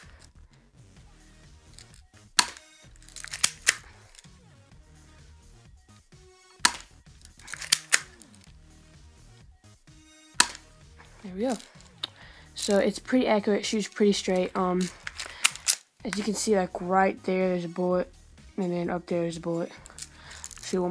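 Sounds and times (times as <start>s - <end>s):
airsoft pistol snaps: 2.4s - 2.7s, 3.3s - 3.8s, 6.6s - 8.3s, 10.4s - 10.7s, 14.8s - 15.9s.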